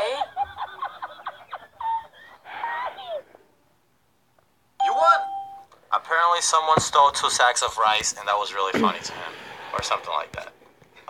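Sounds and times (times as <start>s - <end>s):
steady chime: 4.8s - 5.7s
person speaking: 4.8s - 10.6s.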